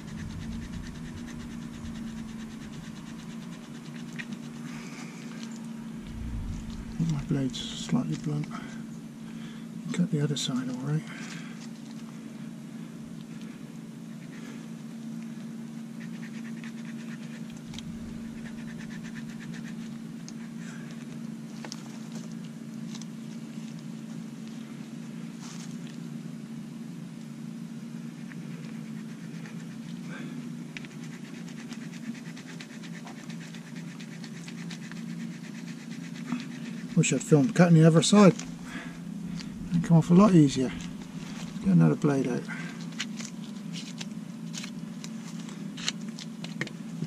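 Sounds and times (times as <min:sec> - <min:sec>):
knife scraping rope: 0:00.0 - 0:07.7, 0:16.0 - 0:20.7, 0:28.2 - 0:41.8
low hum: 0:00.0 - 0:09.6, 0:17.2 - 0:20.4, 0:36.6 - 0:43.7.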